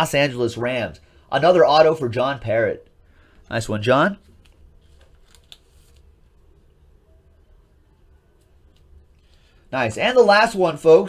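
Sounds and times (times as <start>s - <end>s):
card rustling: 4.1s - 6.8s.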